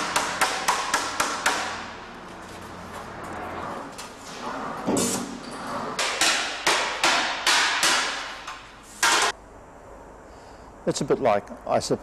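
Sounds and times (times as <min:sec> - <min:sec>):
hammer blows on sheet metal: 0:06.0 - 0:09.4.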